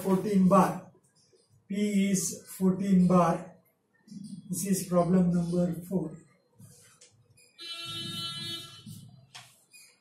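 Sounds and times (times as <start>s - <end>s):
marker squeaking on whiteboard: 4.0s - 10.0s.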